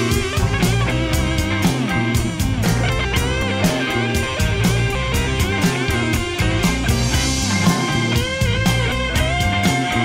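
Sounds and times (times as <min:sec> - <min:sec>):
bending electric guitar notes: 0:00.0 - 0:10.0
rock-blues band playing: 0:00.0 - 0:10.0.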